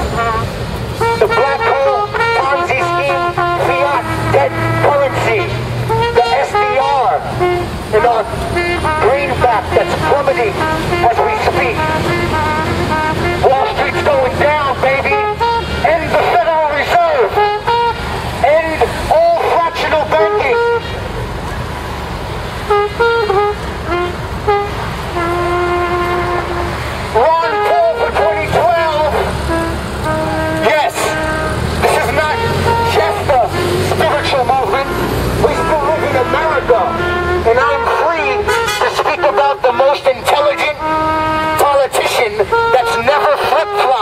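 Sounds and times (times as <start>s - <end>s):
long steady pitched tones: 0.0s - 44.0s
street traffic rumble: 0.0s - 44.0s
man shouting through megaphone: 1.0s - 21.1s, 27.1s - 29.4s, 30.1s - 44.0s.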